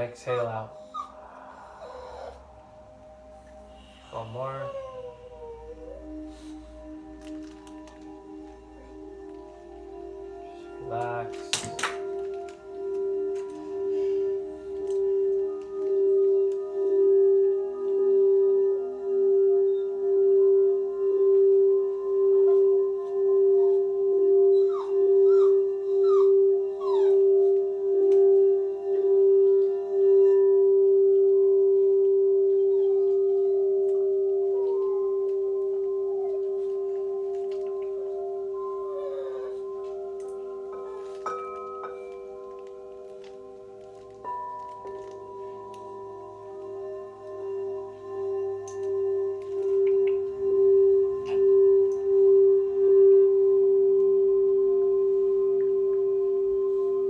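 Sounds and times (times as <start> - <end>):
singing bowl ringing tone: 0.0 - 57.0.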